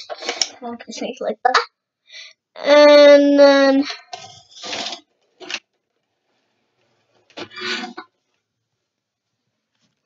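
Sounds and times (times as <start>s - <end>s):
plastic toy scraping: 3.9s - 5.7s.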